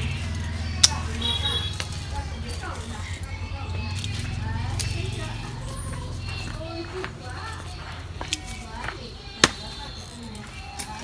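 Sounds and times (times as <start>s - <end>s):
pruning shears snipping: 0.8s - 1.2s.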